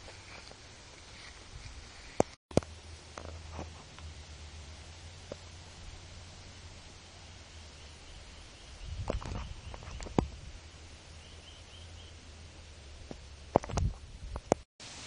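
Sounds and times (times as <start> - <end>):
wind rumble on microphone: 8.0 - 10.8, 13.0 - 14.6.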